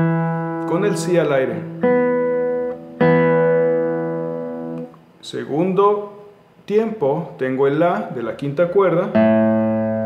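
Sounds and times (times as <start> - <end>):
classical guitar notes ringing: 0.0 - 4.9, 9.1 - 10.0.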